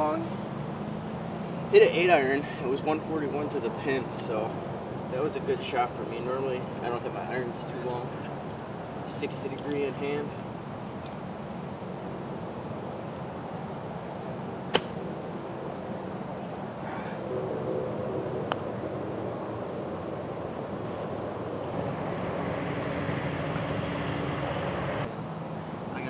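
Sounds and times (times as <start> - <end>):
golf club striking ball: 14.7 - 15.0.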